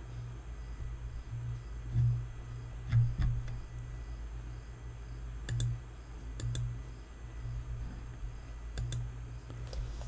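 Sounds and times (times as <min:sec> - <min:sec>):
low electrical hum: 0:00.0 - 0:10.0
computer mouse clicking: 0:05.4 - 0:05.8, 0:06.4 - 0:06.7, 0:08.7 - 0:09.1.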